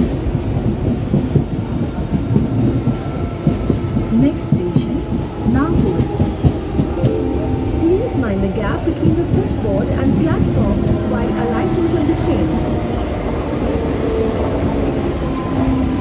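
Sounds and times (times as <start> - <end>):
train wheels rumbling on rail: 0.0 - 16.0.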